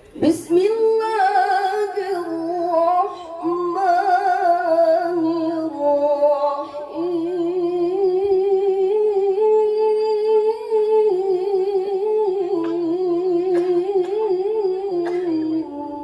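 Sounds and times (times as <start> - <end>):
woman reciting melodically: 0.0 - 16.0.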